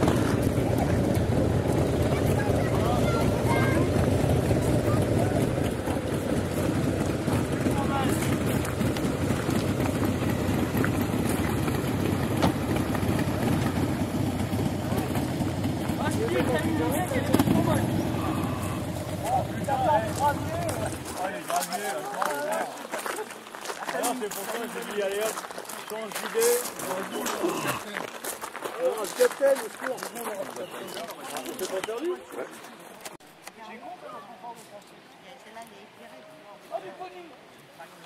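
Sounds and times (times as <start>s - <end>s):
people talking: 0.0s - 9.0s, 13.2s - 28.0s, 28.7s - 38.0s
car engine idling: 0.0s - 21.1s.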